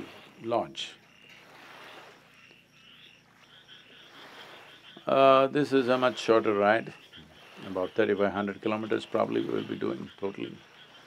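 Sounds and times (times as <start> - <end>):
frogs calling: 0.0 - 11.0.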